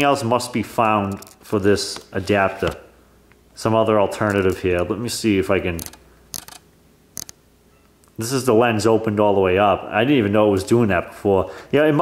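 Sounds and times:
camera control clicks: 1.0 - 1.4, 5.8 - 7.4.

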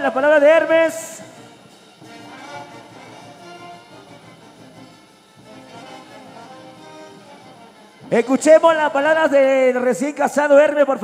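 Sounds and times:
brass band music: 0.0 - 10.0.

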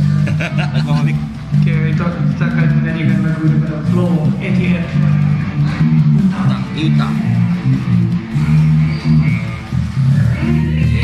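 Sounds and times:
heavy bass line: 0.0 - 11.0.

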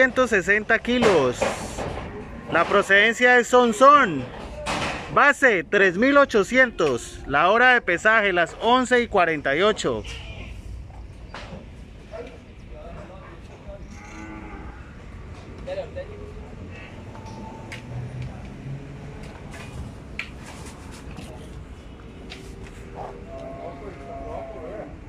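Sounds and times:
cattle mooing: 13.9 - 15.1, 23.0 - 25.0.

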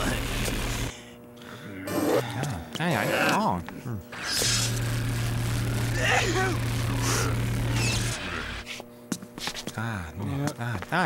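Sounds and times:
scanner electric hum: 0.0 - 11.0.

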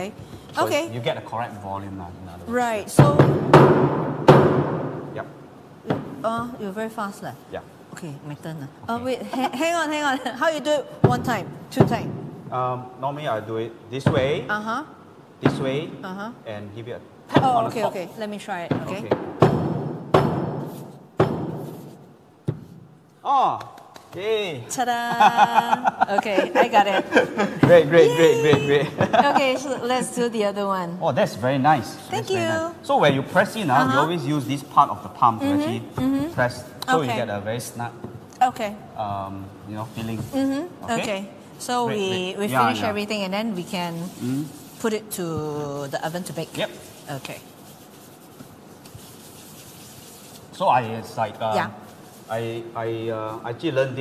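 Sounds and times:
gloved hands rubbing: 20.4 - 23.0, 43.6 - 52.5.

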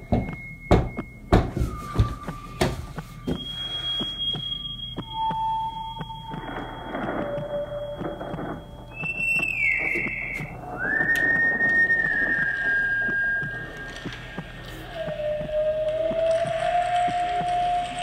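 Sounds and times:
low hum: 0.0 - 18.0.

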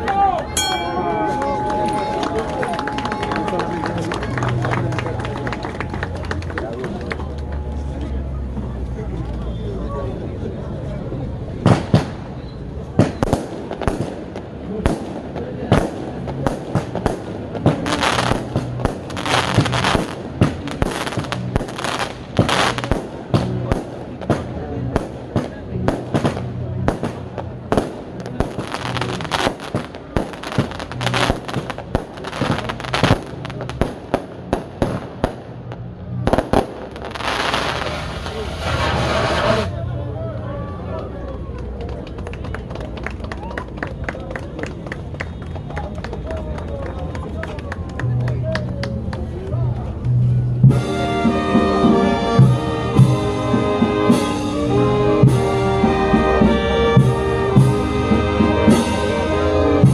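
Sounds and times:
firecrackers cracking: 0.8 - 7.2, 11.6 - 39.7
loud hiss: 37.2 - 39.7.

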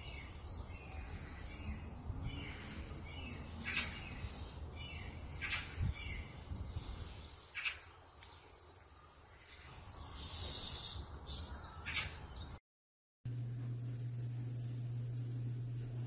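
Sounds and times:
short bird calls: 10.1 - 12.2
steady low hum: 13.3 - 16.0.

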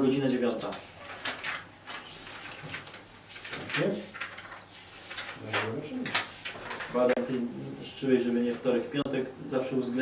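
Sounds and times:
paper pages rustling: 0.4 - 7.4.

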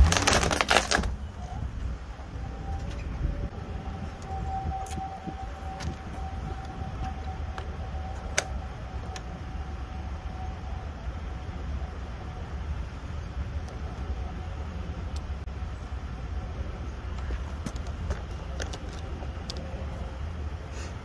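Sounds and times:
low rumble: 0.0 - 20.6.

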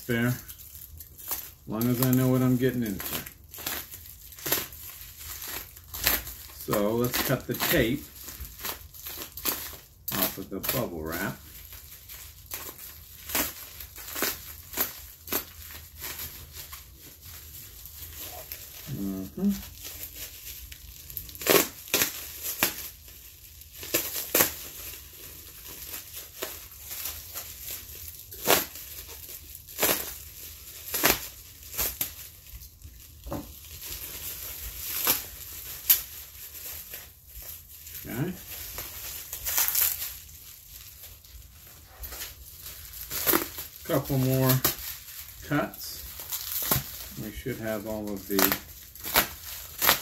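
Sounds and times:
bubble wrap crinkling: 0.0 - 50.0.

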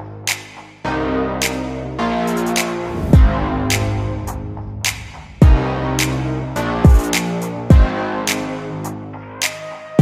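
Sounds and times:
electronic music: 0.0 - 10.0.

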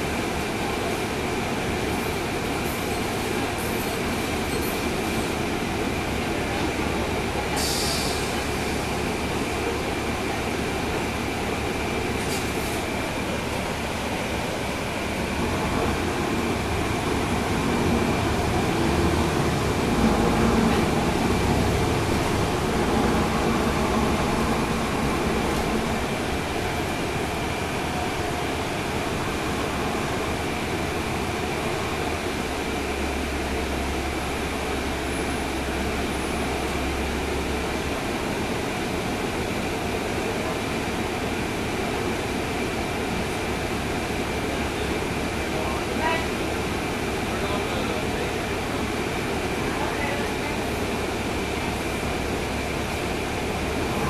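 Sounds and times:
bus diesel engine: 0.0 - 54.0
road noise: 0.0 - 54.0.

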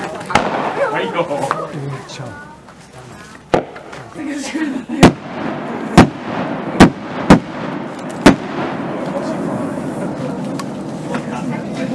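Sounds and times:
crowd murmur: 0.0 - 11.9
firework shells bursting: 5.0 - 9.4.

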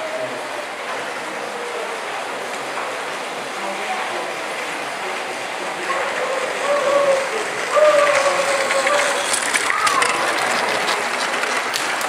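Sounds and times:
distant voices in a hall: 0.0 - 12.0
model train wheels clicking: 5.2 - 12.0.

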